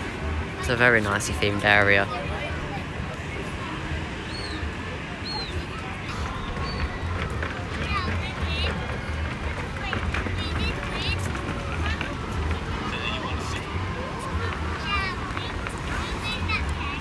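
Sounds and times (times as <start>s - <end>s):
distant voices: 0.0s - 17.0s.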